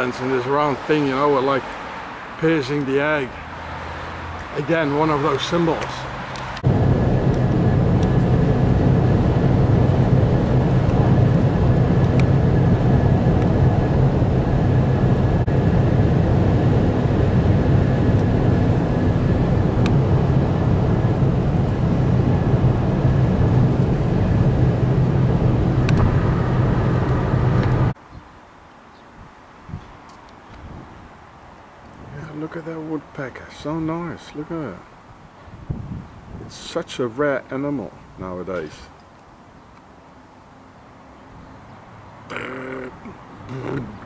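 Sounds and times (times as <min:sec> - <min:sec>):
car cabin drone: 0:05.1 - 0:28.0.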